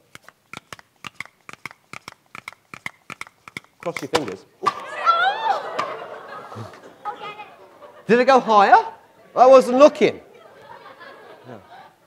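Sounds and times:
audience exclaiming: 4.6s - 11.8s.

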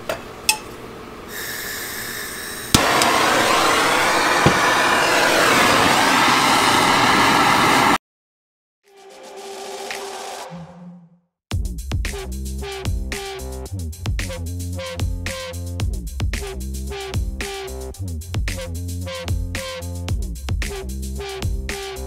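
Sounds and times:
gas torch hissing: 1.3s - 8.0s
gas torch ignition click: 2.7s - 6.4s.

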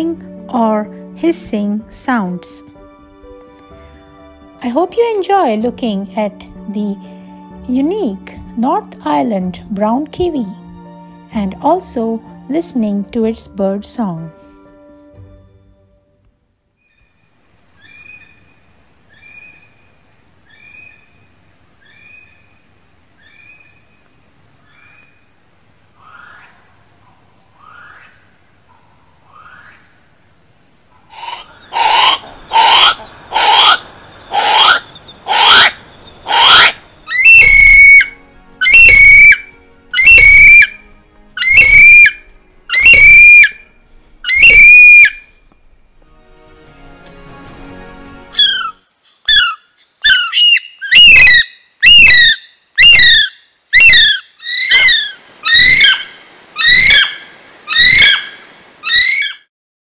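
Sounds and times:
kiwi harsh hoarse cries: 34.4s - 40.8s, 41.4s - 43.6s, 44.2s - 45.2s, 48.4s - 58.3s
kiwi shrill whistles: 36.4s - 40.8s, 41.4s - 43.6s, 44.3s - 45.3s, 48.4s - 56.0s.

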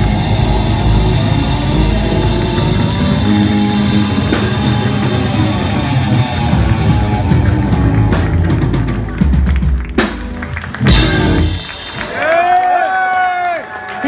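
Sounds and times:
punk rock band playing live: 0.0s - 12.7s.

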